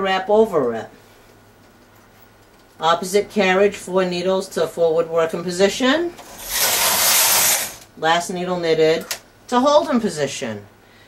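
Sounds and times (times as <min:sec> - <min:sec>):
knitting machine carriage swishing: 0:06.2 - 0:07.8.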